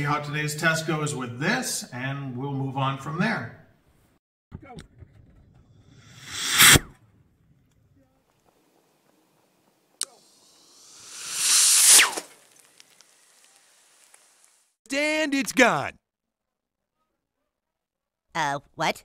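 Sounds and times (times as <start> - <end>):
sharp crack: 10.0 - 14.6
rocket motor rush: 10.4 - 12.4
rocket motor exploding: 10.5 - 13.4.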